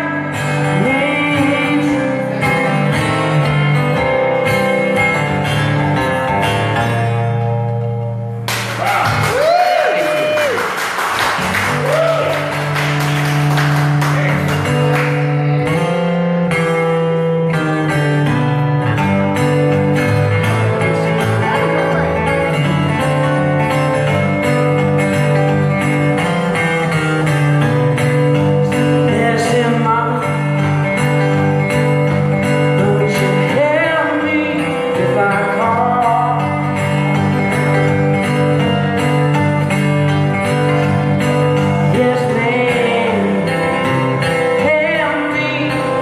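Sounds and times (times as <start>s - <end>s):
sustained guitar notes: 0.0s - 10.4s, 11.2s - 46.0s
audience applauding: 8.5s - 15.4s
cheering calls: 8.8s - 12.8s.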